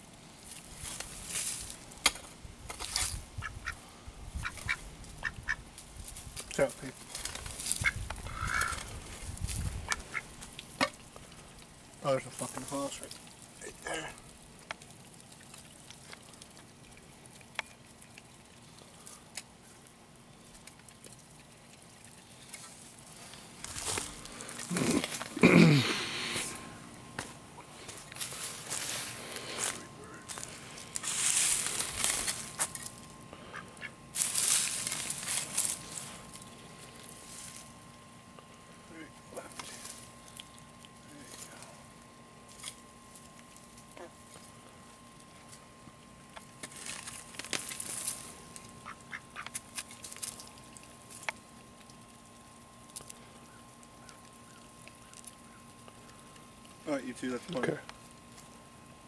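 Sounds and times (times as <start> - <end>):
rustling in dry leaves: 0.0 - 14.4, 22.2 - 26.9, 27.7 - 37.9, 39.4 - 45.2, 46.6 - 49.1
ducks quacking: 3.4 - 3.8, 7.8 - 8.9, 9.8 - 11.0, 33.4 - 34.0.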